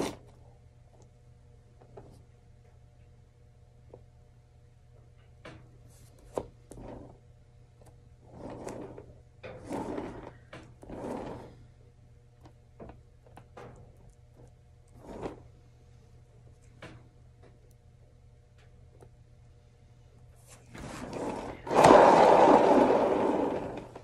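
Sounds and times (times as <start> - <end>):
spinner scraping and rubbing: 0.0 - 0.3, 8.2 - 11.7, 14.9 - 15.5, 20.4 - 24.0.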